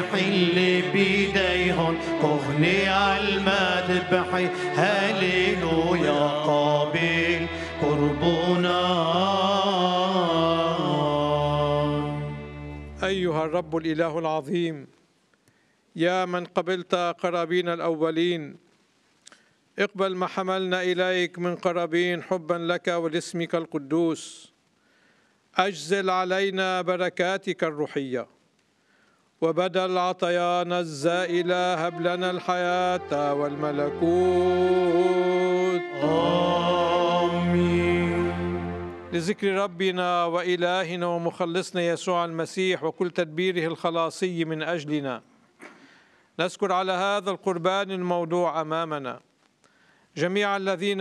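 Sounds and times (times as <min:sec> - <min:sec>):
liturgical chant: 0:00.0 - 0:14.1, 0:29.7 - 0:42.8.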